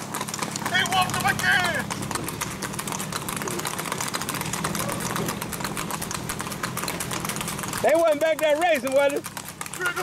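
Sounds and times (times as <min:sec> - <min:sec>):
horse hooves on paved road: 0:00.0 - 0:10.0
low engine hum: 0:00.0 - 0:10.0.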